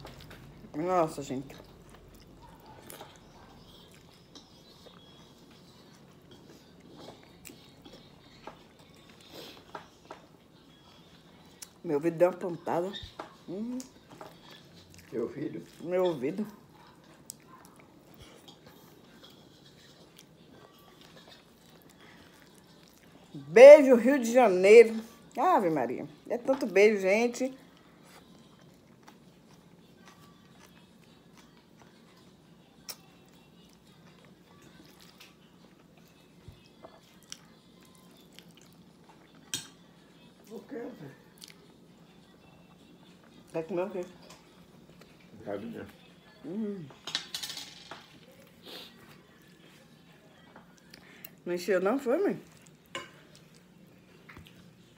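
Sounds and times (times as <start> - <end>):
person chewing: 1.6 - 10.3, 13.2 - 15.1, 16.6 - 23.3, 27.8 - 39.8, 41.3 - 41.8.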